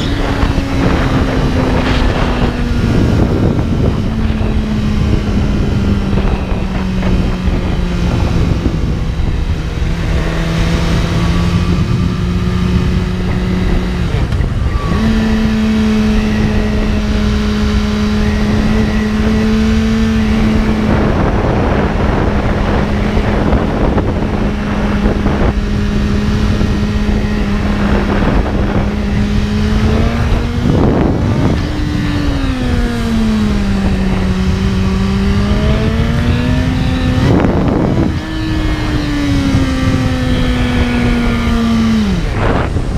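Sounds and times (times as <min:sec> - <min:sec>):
motorcycle engine running: 0:00.0 - 0:42.9
wind noise on microphone: 0:00.0 - 0:42.9.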